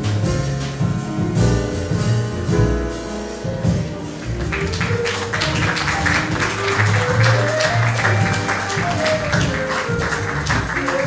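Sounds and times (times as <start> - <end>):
drum kit with cymbal strokes: 0.0 - 11.0
piano: 0.0 - 11.0
upright bass: 0.0 - 11.0
flute melody: 5.6 - 11.0.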